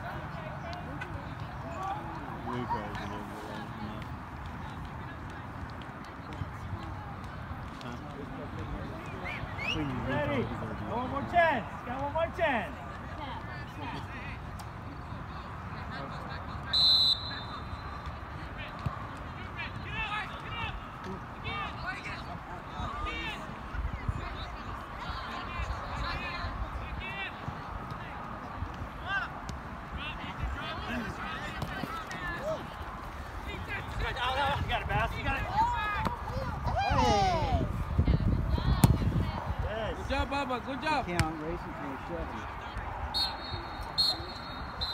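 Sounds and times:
players and spectators shouting: 0.0s - 4.0s, 28.1s - 37.8s
referee's whistle blast: 16.7s - 17.7s, 43.1s - 44.9s
ball being kicked: 38.7s - 39.1s
distant shouting voices: 41.6s - 44.9s.

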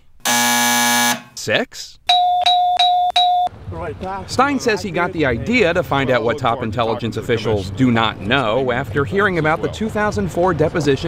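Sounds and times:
game show bell dings: 2.1s - 3.5s.

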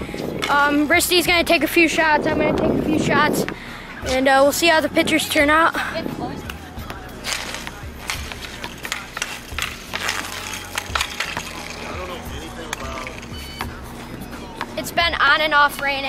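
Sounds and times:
hockey stick tapping pavement: 0.4s - 1.6s, 6.4s - 13.8s, 14.6s - 16.0s
inline skate wheels rolling: 6.8s - 15.5s.

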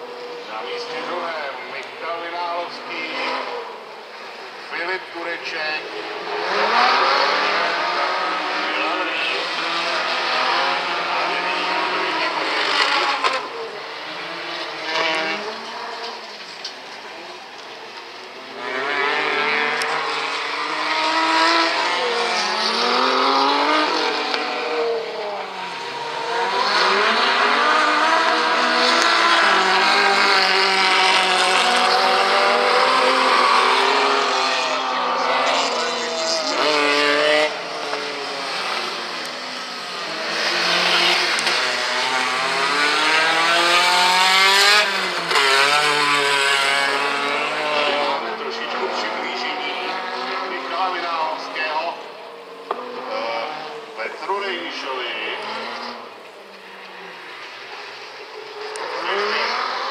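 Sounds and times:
race car engines revving: 0.0s - 59.9s.

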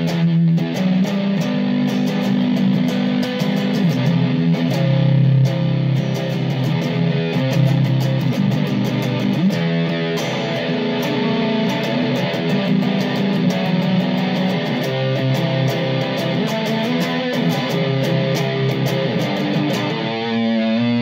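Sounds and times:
electric guitar notes and chords: 0.0s - 21.0s.

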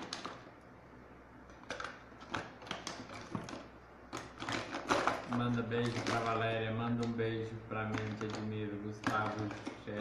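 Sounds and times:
makeup items clicking and knocking: 0.0s - 0.5s, 1.4s - 7.2s, 7.8s - 10.0s.

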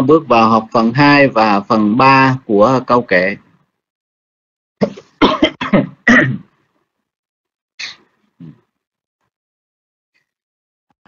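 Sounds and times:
person coughing: 4.8s - 6.5s.

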